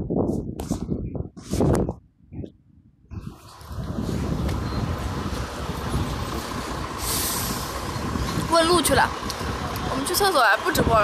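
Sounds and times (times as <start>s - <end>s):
bus engine rumble: 0.4s - 11.0s
air hiss: 7.0s - 7.9s.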